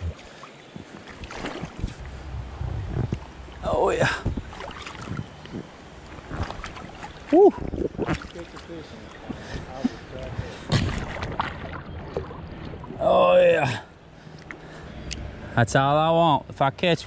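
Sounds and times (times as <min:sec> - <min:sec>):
water sloshing and splashing: 0:00.0 - 0:15.4.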